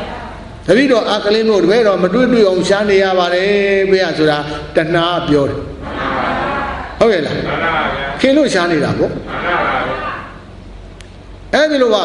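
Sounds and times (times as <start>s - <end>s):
low recording hum: 0.0s - 12.0s.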